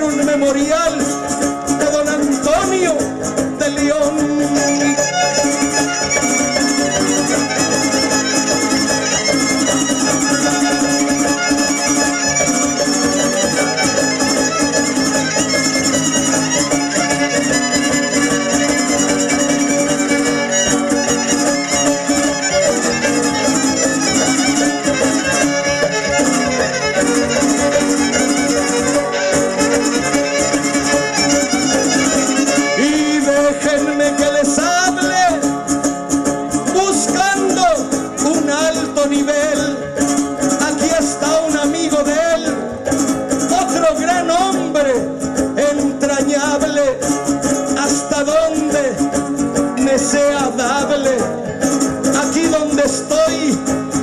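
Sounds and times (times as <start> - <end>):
guitar accompaniment: 0.0 - 54.0
violins: 4.3 - 33.9.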